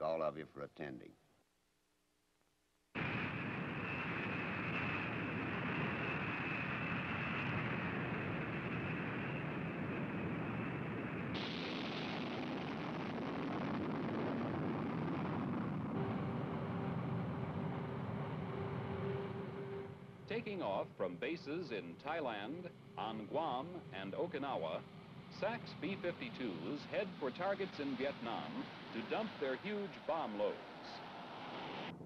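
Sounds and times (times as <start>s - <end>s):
jet engines roaring with whine: 3.0s - 32.0s
steady hum: 3.0s - 32.0s.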